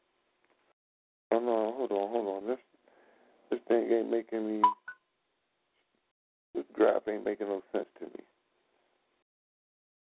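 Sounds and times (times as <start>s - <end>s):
short electronic beeps: 4.6s - 5.0s.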